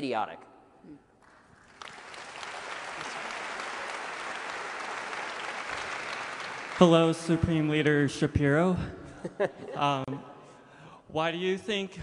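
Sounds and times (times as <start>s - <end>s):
audience applauding: 1.2s - 8.0s.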